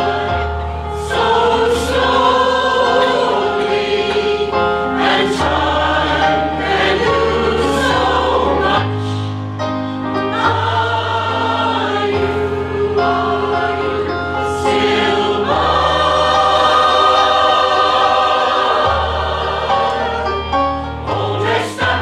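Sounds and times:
mixed choir singing: 0.0 - 22.0.

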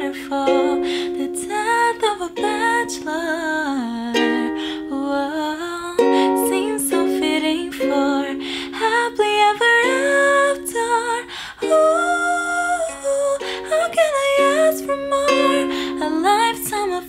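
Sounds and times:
ukulele strumming: 0.0 - 17.0
woman singing: 0.0 - 17.0.

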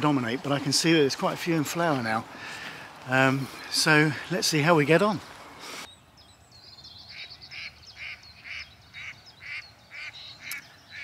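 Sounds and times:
high bird twittering: 5.8 - 11.0.

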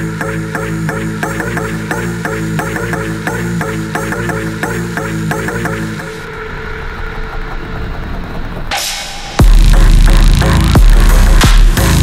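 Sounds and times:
low rumbling bass drone: 0.0 - 12.0.

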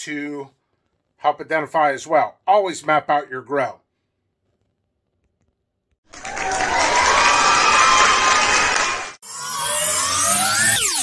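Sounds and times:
crowd cheering and shouting: 6.1 - 9.2
falling electronic sweep: 9.2 - 11.0.

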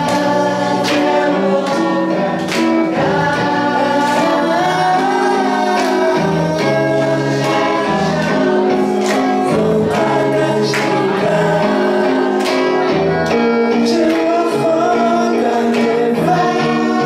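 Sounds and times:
electric guitar chords: 0.0 - 17.0.

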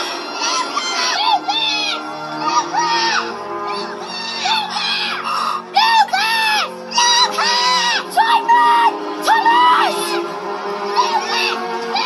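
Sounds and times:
film music: 0.0 - 12.0
boy shouting high calls: 0.8 - 10.2, 11.0 - 12.0.

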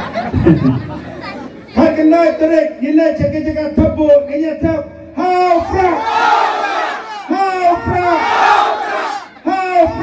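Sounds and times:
crowd chatter: 0.0 - 2.8, 5.5 - 10.0
loud shout: 5.2 - 10.0.

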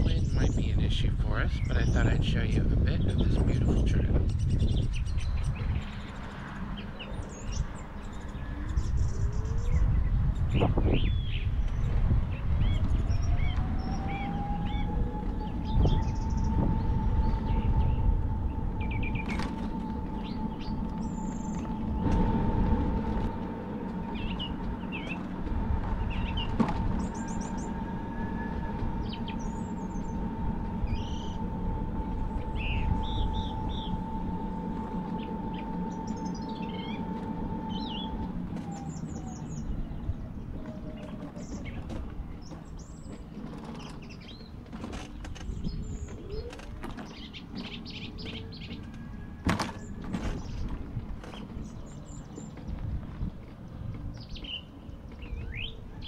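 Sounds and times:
birds chirping: 0.0 - 56.0
electric scooter motor whining: 0.0 - 56.0
wind rumbling on microphone: 0.0 - 56.0.

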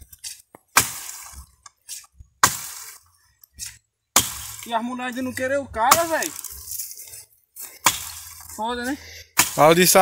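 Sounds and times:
axe chopping wood: 0.2 - 4.8, 5.8 - 6.7, 7.7 - 8.7, 9.3 - 10.0.

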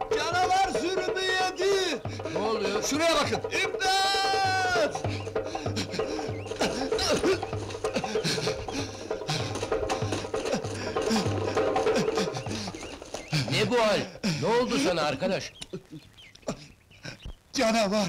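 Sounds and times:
short rising-and-falling calls: 0.0 - 14.1
long held cry: 0.0 - 14.8
music with steady low drum beat: 0.0 - 15.6.

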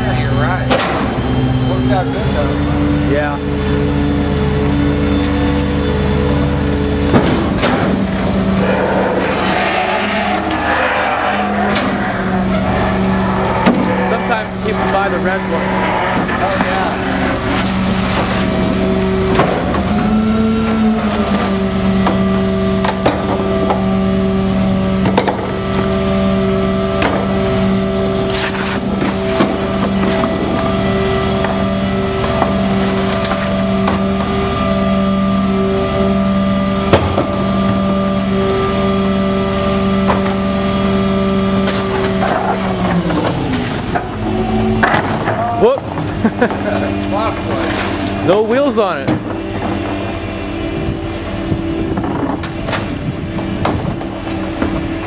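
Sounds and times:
garbage truck engine hum: 0.0 - 55.0
trash cans knocking and clattering: 7.0 - 8.4, 16.1 - 23.9, 36.9 - 38.2, 40.0 - 48.2, 51.8 - 55.0.

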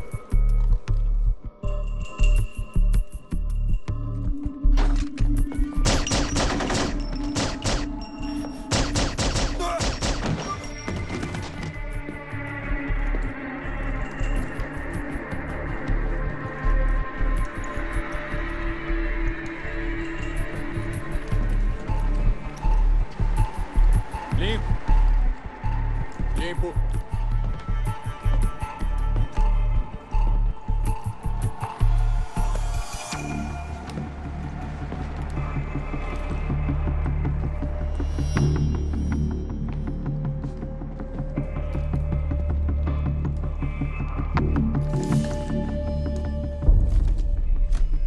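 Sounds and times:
gunshots with echo: 5.8 - 8.0, 8.7 - 10.7.

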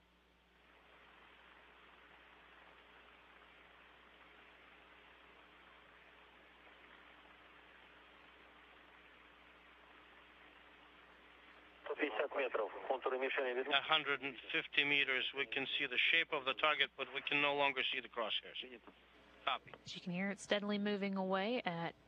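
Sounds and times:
radio channel hiss: 0.0 - 20.0
man's voice over radio: 11.9 - 18.8.

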